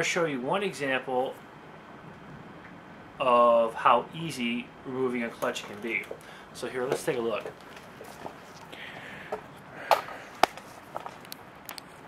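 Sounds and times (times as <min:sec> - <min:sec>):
sharp clicks and knocks: 0:05.4 - 0:08.7
camera handling rustle: 0:06.9 - 0:12.0.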